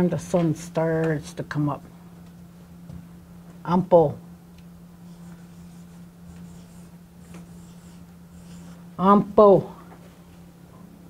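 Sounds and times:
low hum: 0.0s - 11.0s
marker writing on whiteboard: 5.1s - 8.8s.

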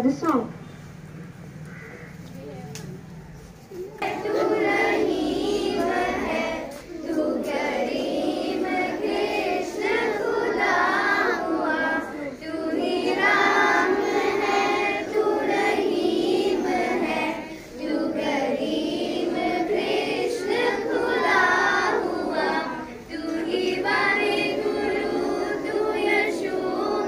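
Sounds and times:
children singing together: 3.7s - 27.0s.

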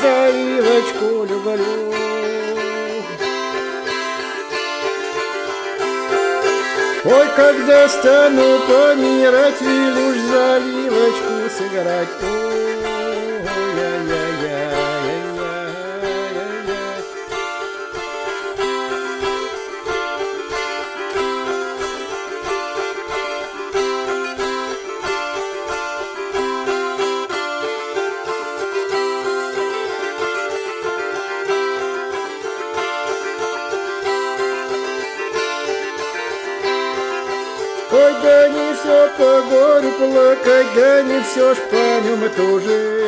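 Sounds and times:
plucked string instrument tune: 0.0s - 43.0s.

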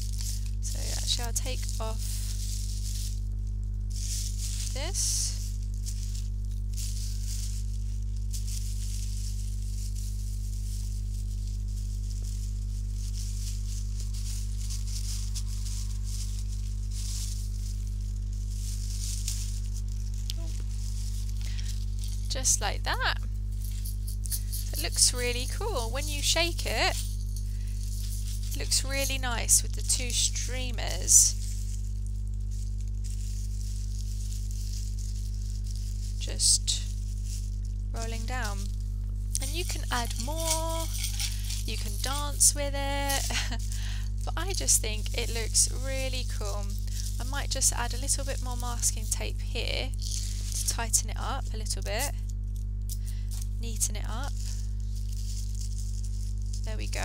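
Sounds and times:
tissue paper rustling: 0.0s - 52.4s, 53.2s - 57.0s
low electrical hum: 0.0s - 57.0s.

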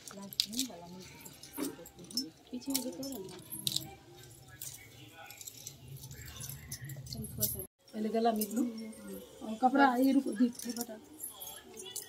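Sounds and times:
bangles jingling and clinking: 0.0s - 12.0s.

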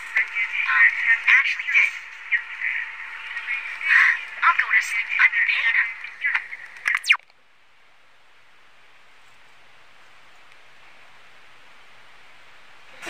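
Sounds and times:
person speaking: 0.0s - 7.2s
faint steady hiss: 0.0s - 13.0s.

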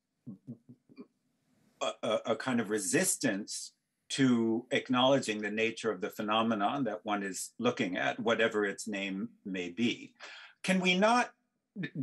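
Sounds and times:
man speaking: 1.8s - 12.0s
low throat sounds: 11.8s - 12.0s.

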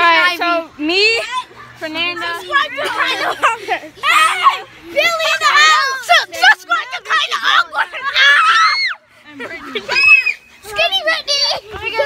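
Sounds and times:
excited children's voices: 0.0s - 12.0s
children laughing: 1.0s - 12.0s.

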